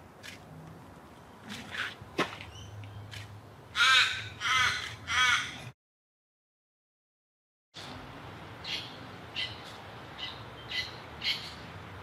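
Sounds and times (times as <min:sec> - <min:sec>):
crow cawing: 0:03.8 - 0:05.6.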